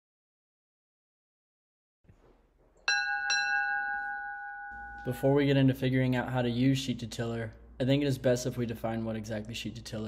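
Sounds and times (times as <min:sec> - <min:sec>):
bell-like chime: 0:02.8 - 0:05.5.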